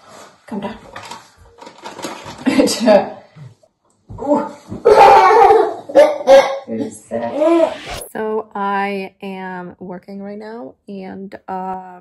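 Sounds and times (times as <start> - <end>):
child vocalizing excitedly: 4.2 - 6.5.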